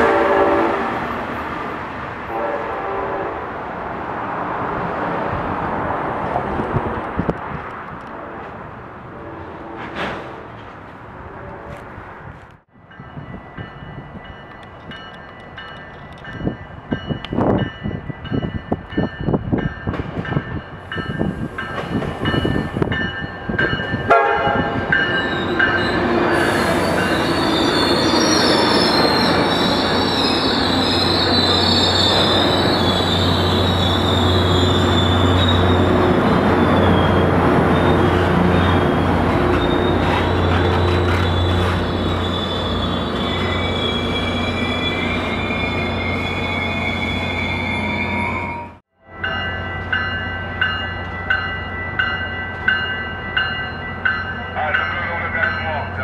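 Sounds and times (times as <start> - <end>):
high-pitched metal squeal: 25.2 - 48.8.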